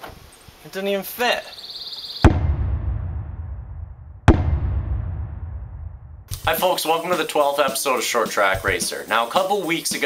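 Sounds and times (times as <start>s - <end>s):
deep cinematic boom hits: 2.2s - 6.4s.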